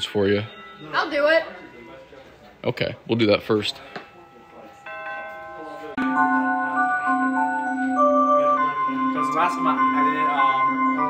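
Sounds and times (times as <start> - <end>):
wall clock electronic melody: 0.0 - 2.4, 3.1 - 11.0.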